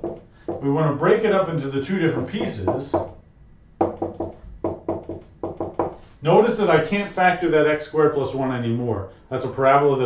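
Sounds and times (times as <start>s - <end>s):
marker writing on whiteboard: 3.8s - 6.0s.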